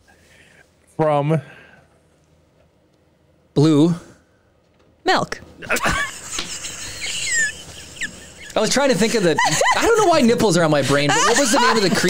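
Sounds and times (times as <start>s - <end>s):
man and woman laughing: 5.6s - 12.0s.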